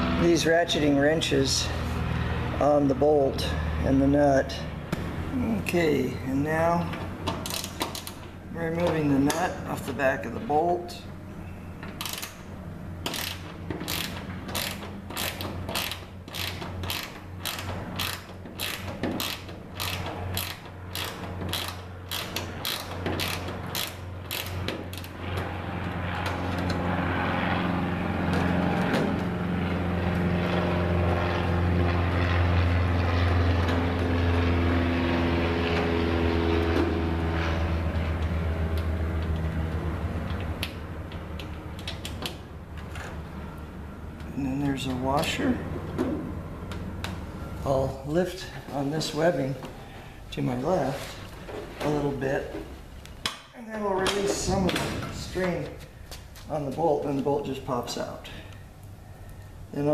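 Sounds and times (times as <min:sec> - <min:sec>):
ratcheting wrench clicking: 0:07.4 - 0:08.3, 0:12.0 - 0:12.4, 0:13.0 - 0:25.2.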